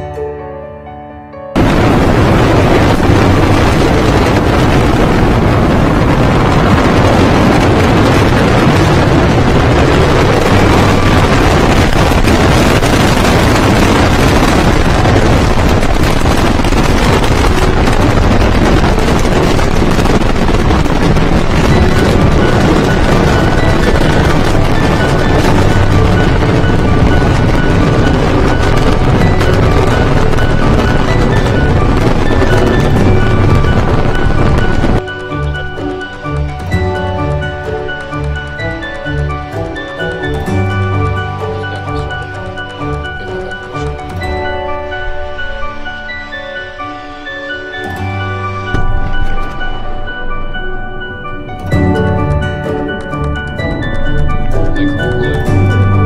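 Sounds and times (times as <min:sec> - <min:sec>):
rocket engines rumbling: 0:01.6 - 0:56.0
faint music: 0:20.2 - 0:56.0.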